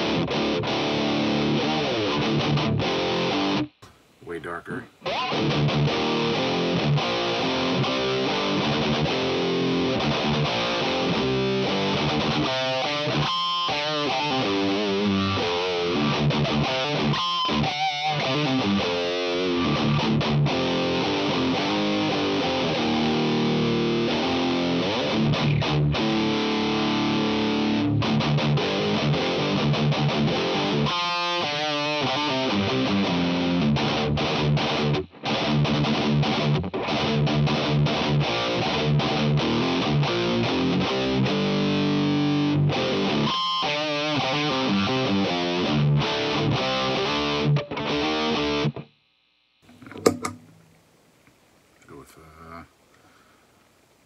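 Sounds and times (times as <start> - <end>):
distorted electric guitar riffs: 0.0 - 48.9, 49.6 - 51.0.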